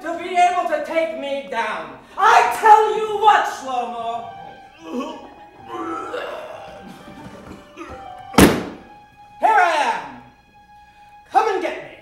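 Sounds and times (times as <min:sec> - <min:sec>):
quiet background music: 0:00.0 - 0:12.0
hard thump: 0:08.4 - 0:08.9.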